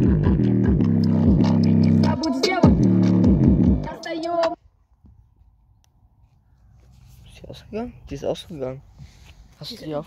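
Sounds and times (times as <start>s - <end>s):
deep sliding bass notes: 0.0s - 3.9s.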